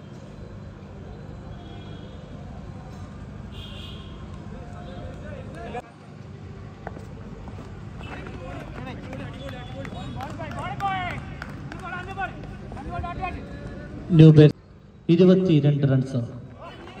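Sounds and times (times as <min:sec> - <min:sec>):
distant men calling out and talking: 0:03.8 - 0:06.2, 0:07.8 - 0:17.0.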